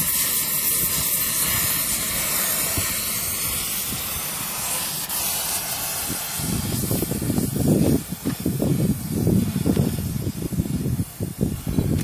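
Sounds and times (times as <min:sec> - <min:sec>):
cutting torch hissing: 0:00.0 - 0:12.0.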